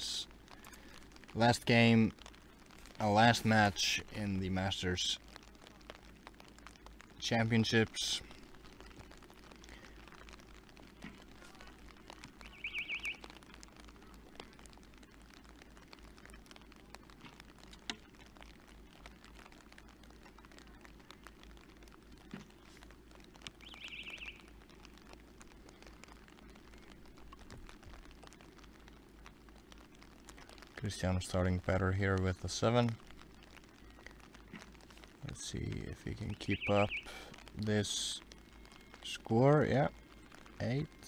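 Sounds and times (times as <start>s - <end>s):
faint steady hiss: 0.0s - 41.0s.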